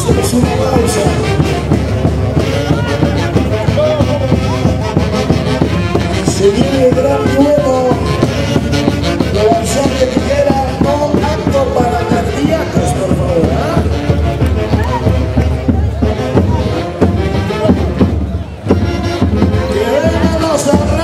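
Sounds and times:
festive music with steady beat: 0.0 - 21.0.

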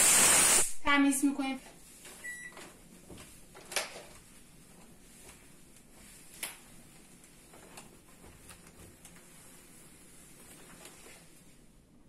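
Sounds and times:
microwave beep: 2.2 - 2.6.

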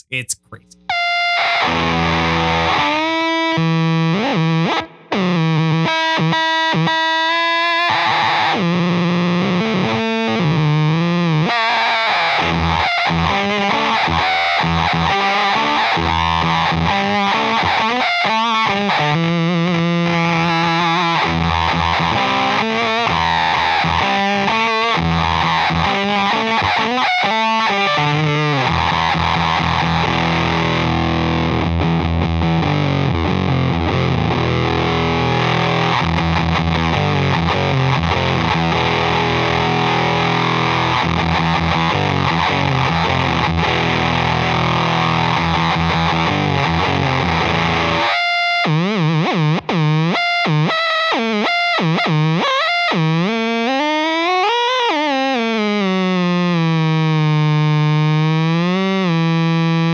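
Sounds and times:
fuzz electric guitar: 0.9 - 59.9.

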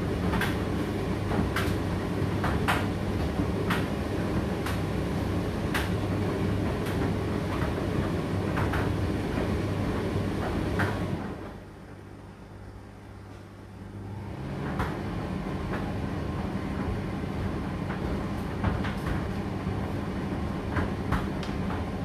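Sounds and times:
tumble dryer humming: 0.0 - 22.0
dryer drum knocks: 16.6 - 22.0.

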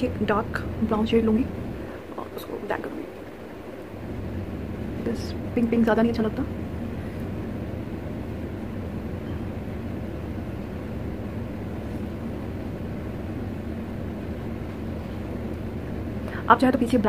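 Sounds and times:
low background rumble: 0.0 - 17.0.

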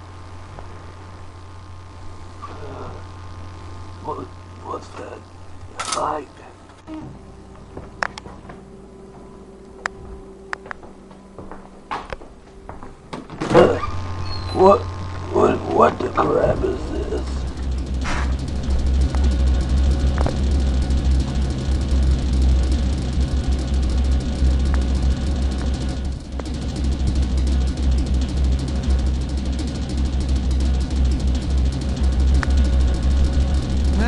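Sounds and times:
loud steady low rumble with hiss: 0.0 - 10.6, 13.3 - 34.0.

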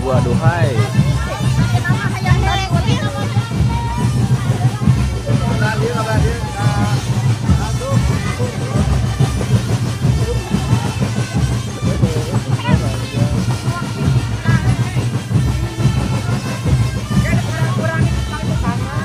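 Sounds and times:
marching drum band: 0.0 - 19.0
voices: 0.0 - 19.0.

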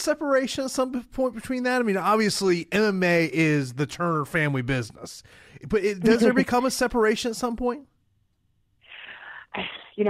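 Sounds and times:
woman speaking: 6.0 - 6.7, 8.9 - 10.0.

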